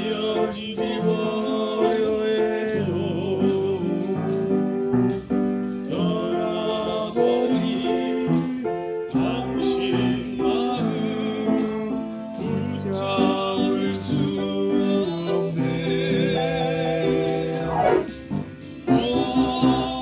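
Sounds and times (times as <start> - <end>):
person singing: 0.0 - 4.9, 5.8 - 20.0
upright piano chords: 0.0 - 20.0.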